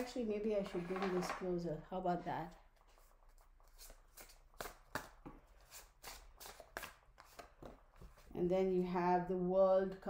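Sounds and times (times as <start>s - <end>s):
cards being shuffled: 2.8s - 8.3s.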